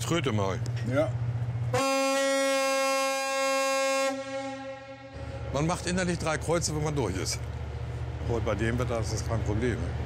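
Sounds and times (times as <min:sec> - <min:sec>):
low steady hum: 0:00.0 - 0:10.0
ship's horn blast: 0:01.6 - 0:06.3.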